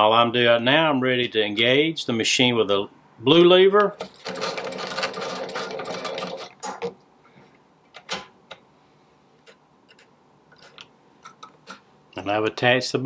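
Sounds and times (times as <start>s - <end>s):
sewing machine rapid clatter: 4.1s - 6.8s.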